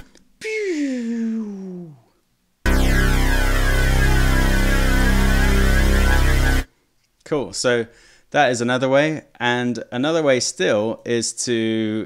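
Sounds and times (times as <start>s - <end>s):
phasing synth bass note: 2.7s - 6.7s.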